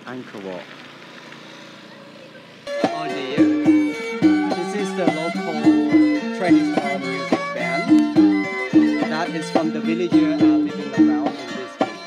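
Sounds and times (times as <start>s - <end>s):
low outdoor background: 0.0s - 12.0s
bowed two-string fiddle: 2.6s - 12.0s
plucked strings: 2.6s - 12.0s.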